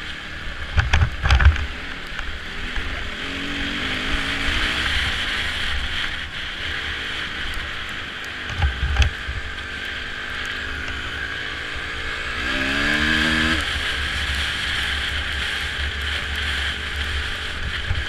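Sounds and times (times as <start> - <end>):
dirt bike engine running: 0.0 - 18.0
wind noise on microphone: 8.5 - 9.6, 12.3 - 18.0.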